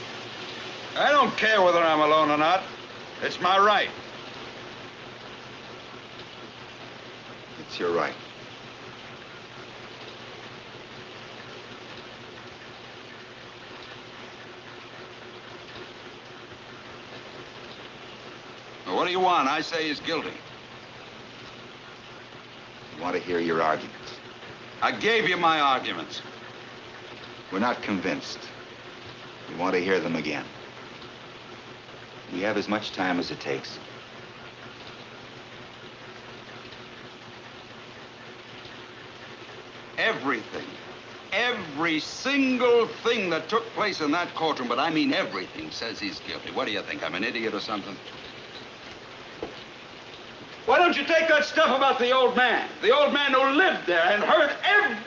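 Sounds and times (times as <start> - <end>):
steady background hiss: 0.0 - 55.0.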